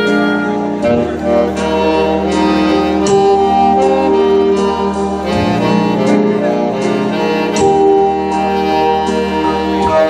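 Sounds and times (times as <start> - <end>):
saxophones playing melody: 0.0 - 10.0.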